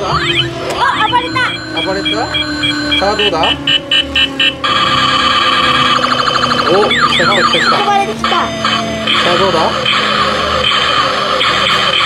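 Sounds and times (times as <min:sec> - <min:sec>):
electronic beeping tune: 0:00.0 - 0:12.0.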